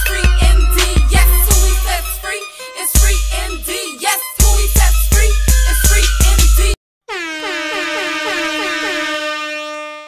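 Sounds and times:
stuttering air horn: 0.0 - 2.3, 7.1 - 10.0.

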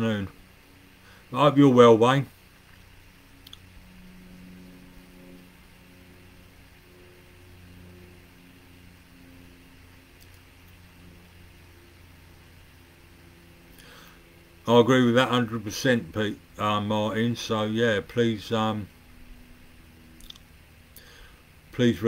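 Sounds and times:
faint low hum: 0.0 - 22.0
small click: 3.4 - 3.6, 20.2 - 20.5.

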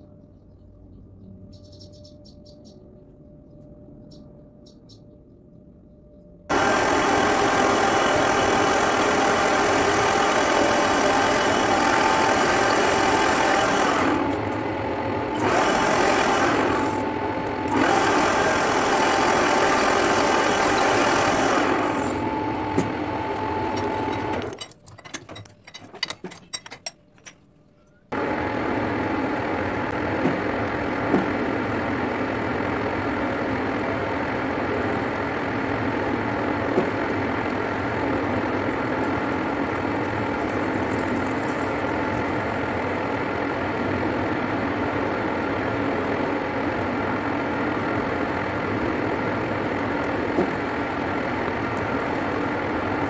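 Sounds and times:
metal lathe cutting: 6.5 - 24.7.

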